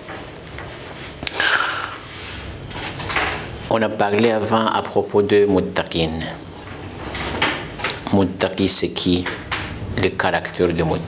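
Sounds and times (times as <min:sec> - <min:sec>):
steady low hum: 0:00.0 - 0:11.0
man speaking: 0:03.7 - 0:06.5, 0:08.0 - 0:09.4, 0:10.0 - 0:11.0.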